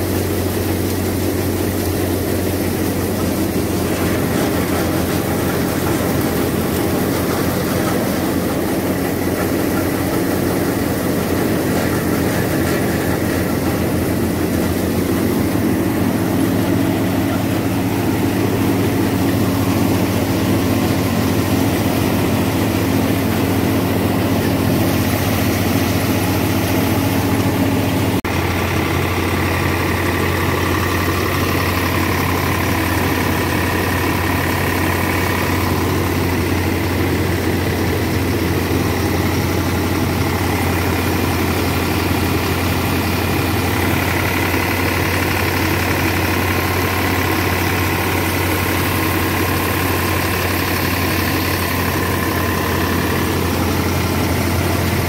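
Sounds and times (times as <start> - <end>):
thresher humming: 0.0 - 55.0
tractor diesel engine running: 0.0 - 55.0.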